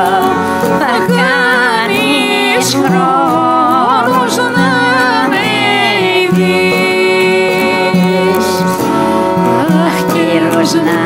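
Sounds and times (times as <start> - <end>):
folk song with instrumental accompaniment: 0.0 - 11.0.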